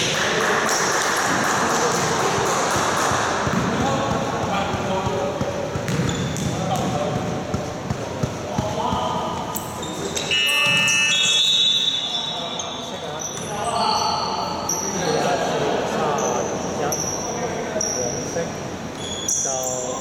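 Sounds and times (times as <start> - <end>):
players' voices: 0.0 - 11.2
basketball bouncing on court: 0.7 - 9.6
sneaker squeaks on floor: 3.5 - 15.0, 16.2 - 18.2, 18.9 - 20.0.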